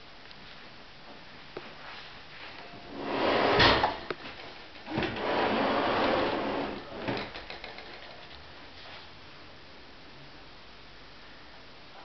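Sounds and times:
wooden drawer sliding: 2.9s - 4.1s, 4.9s - 7.3s.

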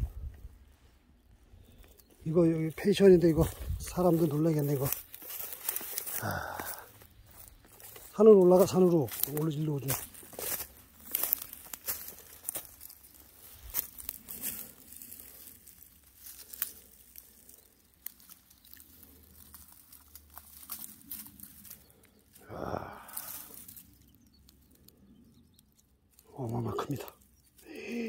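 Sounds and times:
footsteps crunching dry leaves: 1.3s - 24.9s.

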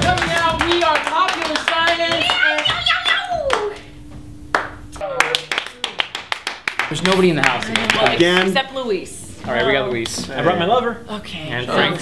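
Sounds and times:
hands clapping: 0.0s - 3.9s, 4.5s - 8.6s.

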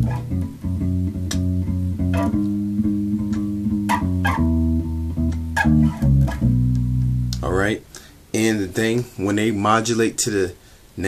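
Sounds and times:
electric bass guitar notes: 0.0s - 8.1s.

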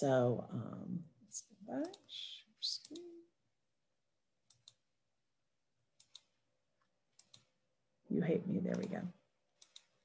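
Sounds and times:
computer mouse clicks: 1.7s - 2.1s, 2.8s - 3.2s, 4.4s - 4.9s, 5.9s - 6.4s, 7.1s - 7.6s, 8.7s - 10.0s.

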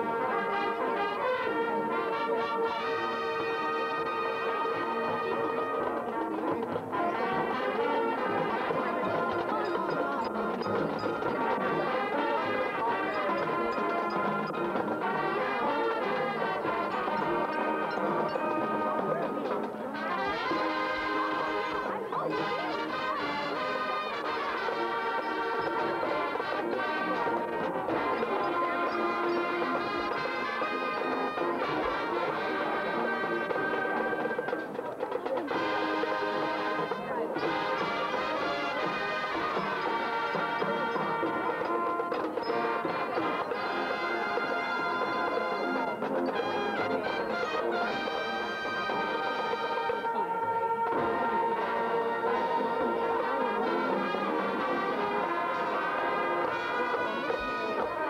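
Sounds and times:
marching band playing: 0.0s - 58.0s.

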